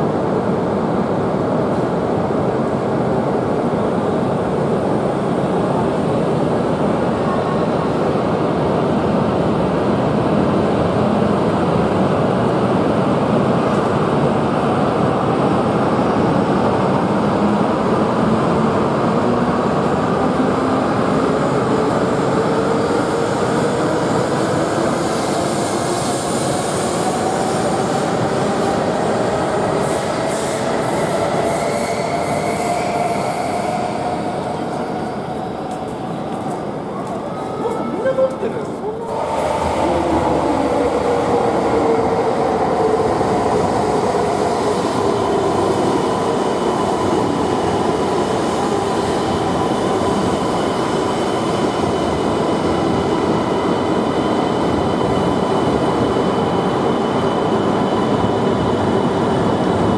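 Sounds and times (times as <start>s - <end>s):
train wheel and running noise: 0.0s - 59.9s.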